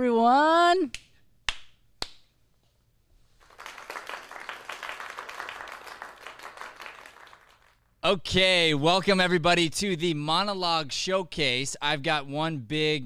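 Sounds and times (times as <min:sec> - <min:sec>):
sharp hand claps: 0:00.9 - 0:02.3, 0:03.4 - 0:07.8
applause: 0:03.4 - 0:07.9.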